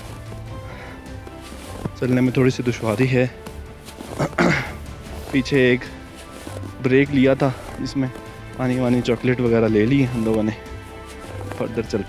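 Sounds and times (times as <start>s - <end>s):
background music of held tones: 0.0s - 12.0s.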